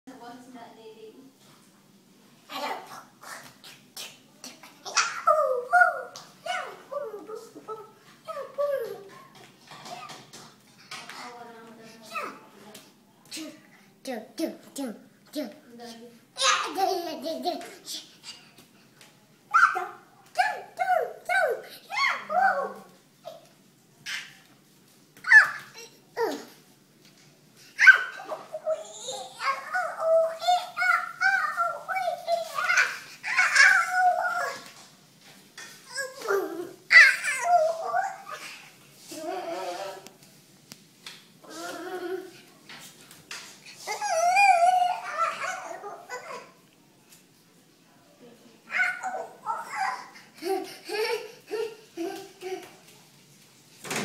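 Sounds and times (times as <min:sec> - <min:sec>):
toddler yelling and squealing: 0:19.5 - 0:23.4, 0:25.2 - 0:26.4, 0:27.8 - 0:34.7, 0:35.9 - 0:38.5, 0:43.8 - 0:46.6, 0:48.7 - 0:50.2
toddler crying: 0:43.8 - 0:46.6, 0:48.7 - 0:52.7
toddler crying out: 0:43.9 - 0:46.6.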